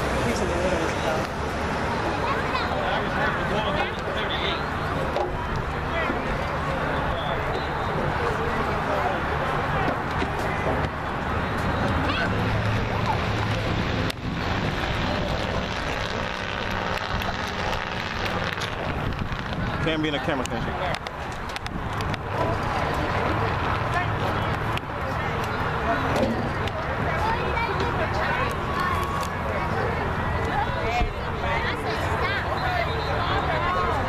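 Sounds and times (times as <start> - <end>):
indistinct chatter of people: 0.0 - 34.0
wind buffeting microphone: 11.7 - 24.6.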